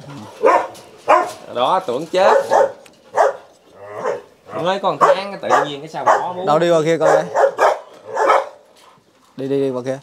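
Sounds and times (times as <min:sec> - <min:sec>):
dog barking: 0:00.4 - 0:01.4, 0:02.2 - 0:08.7.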